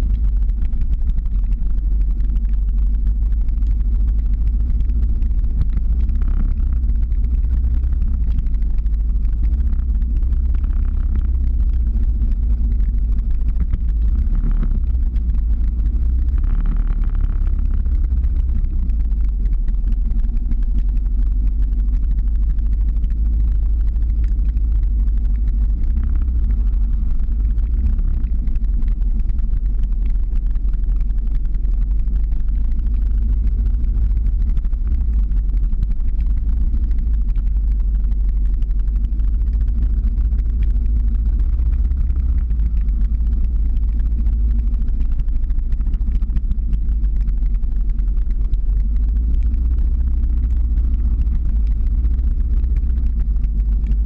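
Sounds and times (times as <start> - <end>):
car engine rumble: 0.0 - 54.0.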